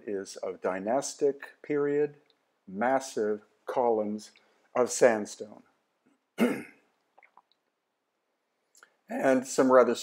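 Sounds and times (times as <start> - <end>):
man clearing his throat: 6.4 - 6.9.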